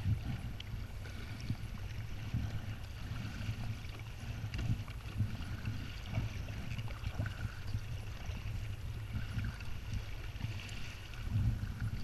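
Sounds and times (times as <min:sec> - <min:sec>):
paddle blades dipping into water: 0:00.0 - 0:12.0
water splashing against kayak: 0:00.0 - 0:12.0
wind rumble on microphone: 0:00.0 - 0:12.0.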